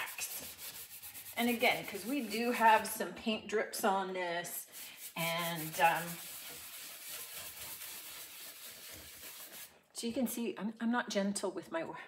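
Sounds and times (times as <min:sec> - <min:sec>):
brush scrubbing wood: 0:00.0 - 0:02.8, 0:04.7 - 0:09.8.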